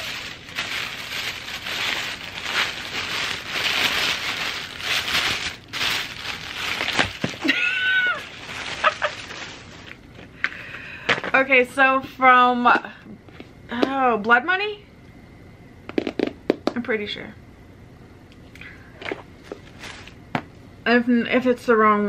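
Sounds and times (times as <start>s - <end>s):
tissue paper rustling: 0.0s - 10.0s, 19.5s - 20.2s.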